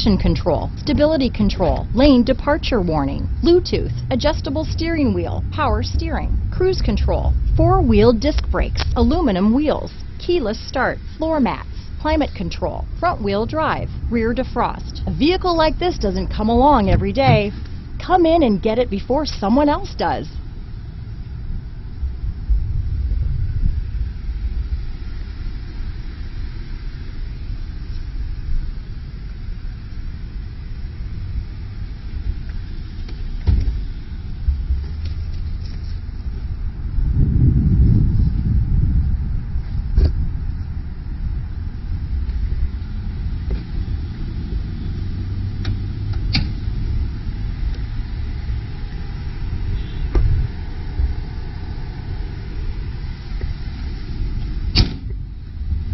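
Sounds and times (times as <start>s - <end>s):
wind rumble on microphone: 0.0s - 55.9s.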